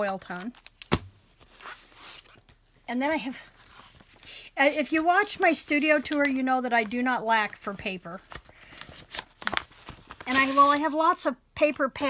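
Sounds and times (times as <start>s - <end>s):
paper and plastic wrapping rustling: 5.0s - 11.0s.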